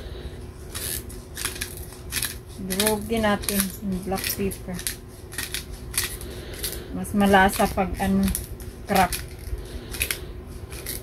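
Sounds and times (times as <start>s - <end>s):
pepper grinder cracking peppercorns: 0.7s - 11.0s.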